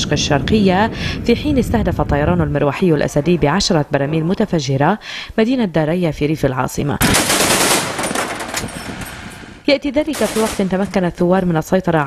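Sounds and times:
machine gun automatic fire: 7.0 - 11.2.

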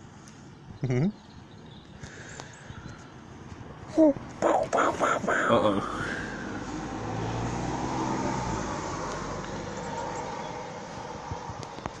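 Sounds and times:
outdoor background noise: 0.0 - 12.0
vehicle passing by: 4.5 - 12.0.

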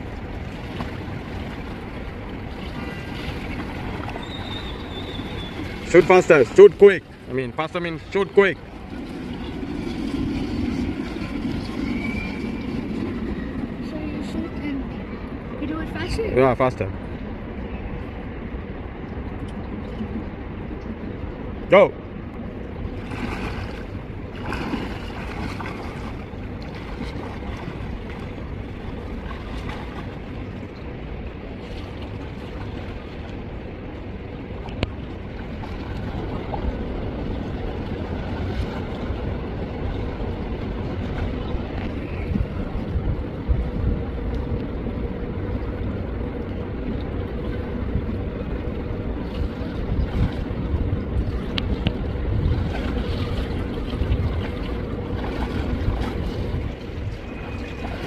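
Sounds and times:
faint steady hum: 0.0 - 58.0
wind rumble on microphone: 0.0 - 58.0
pool water splashing from swimmer: 22.9 - 30.7.

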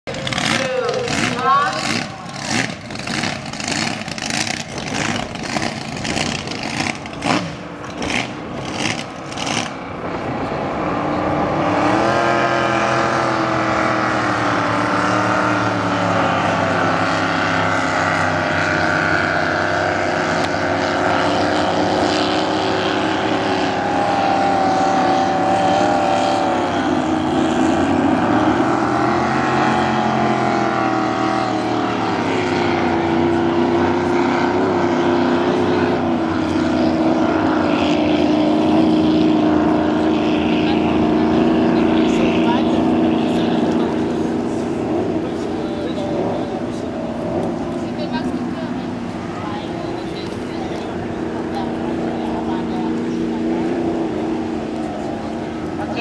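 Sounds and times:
racing powerboat engines: 0.0 - 56.0.

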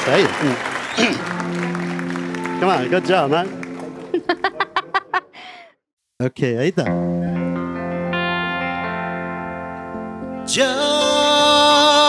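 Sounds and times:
person laughing: 4.0 - 5.7.

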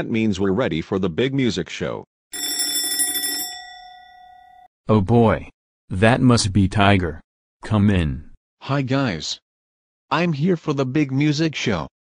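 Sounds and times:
doorbell ringing: 2.4 - 4.7.

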